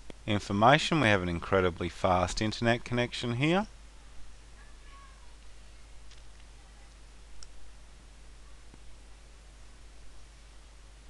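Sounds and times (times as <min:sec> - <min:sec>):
faint room noise: 0:00.0 - 0:11.0
steady low hum: 0:00.0 - 0:11.0.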